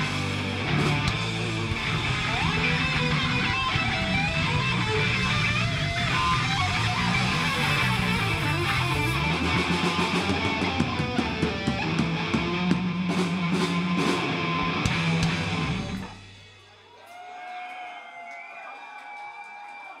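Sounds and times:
live band playing: 0:00.0 - 0:16.8.

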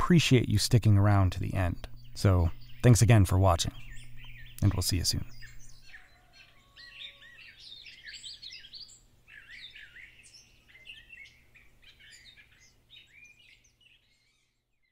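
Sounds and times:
small birds chirping and trilling: 0:00.0 - 0:14.9.

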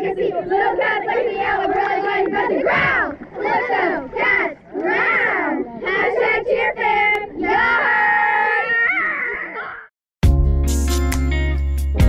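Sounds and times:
girls chanting in unison: 0:00.0 - 0:08.8.

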